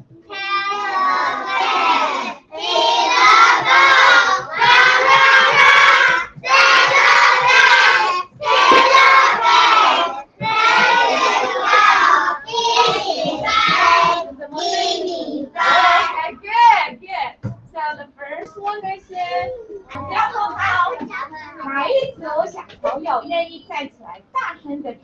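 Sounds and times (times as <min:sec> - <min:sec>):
children chanting in unison: 0:00.3 - 0:16.1.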